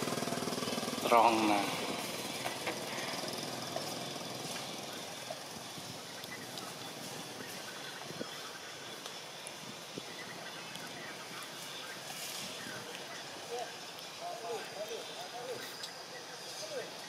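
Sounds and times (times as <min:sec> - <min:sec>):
forest background hiss: 0:00.0 - 0:17.0.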